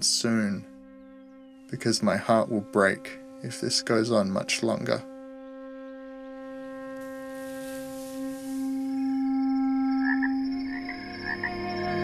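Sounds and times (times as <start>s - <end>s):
long held wind instrument note: 0.0s - 10.0s.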